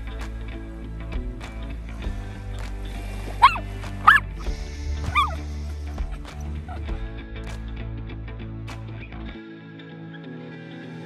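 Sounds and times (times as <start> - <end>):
background music: 0.0 - 11.0
dog barking: 3.4 - 4.2.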